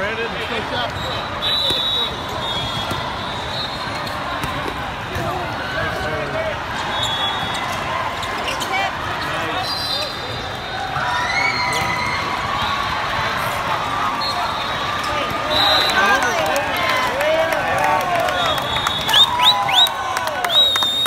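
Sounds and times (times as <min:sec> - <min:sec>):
many voices chattering: 0:00.0 - 0:19.2
volleyballs hit and bouncing: 0:01.6 - 0:06.3.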